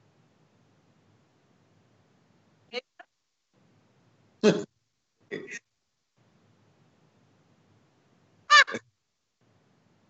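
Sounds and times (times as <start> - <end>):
person laughing: 8.5 - 8.8.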